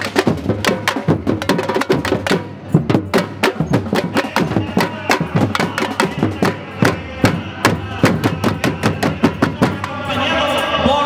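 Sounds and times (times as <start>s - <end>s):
drum band playing fast rhythm: 0.0s - 10.6s.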